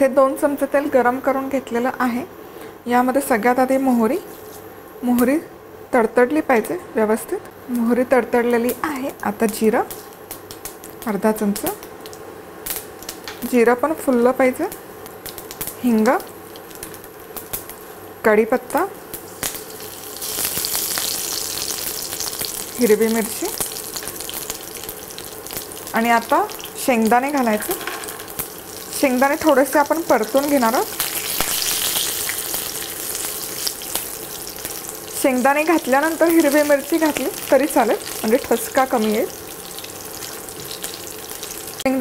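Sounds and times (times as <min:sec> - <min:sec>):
leaves sizzling in hot oil: 0:08.6 - 0:42.0
small crackles: 0:14.7 - 0:17.8
seeds popping in oil: 0:19.1 - 0:41.2.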